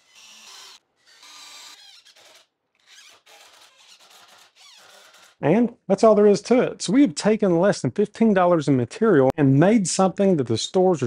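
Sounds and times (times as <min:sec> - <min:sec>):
cordless drill boring into wood: 0:00.0 - 0:05.4.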